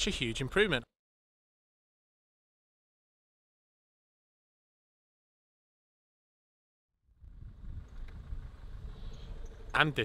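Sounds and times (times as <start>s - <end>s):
faint low rumble: 7.1s - 10.0s.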